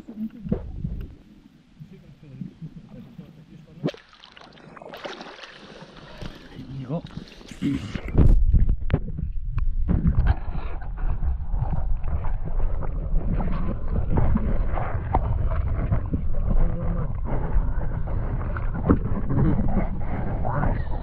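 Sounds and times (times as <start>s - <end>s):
muffled underwater rumble: 0.0s - 3.8s, 5.9s - 21.0s.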